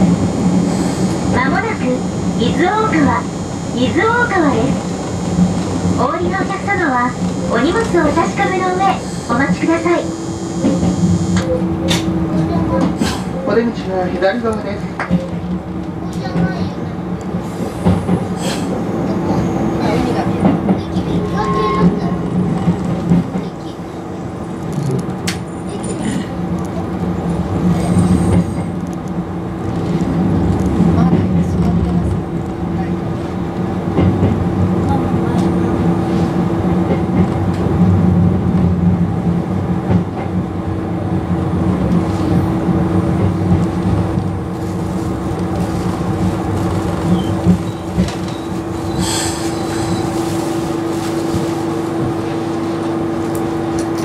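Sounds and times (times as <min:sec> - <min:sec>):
electric train rumbling: 0:00.0 - 0:54.0.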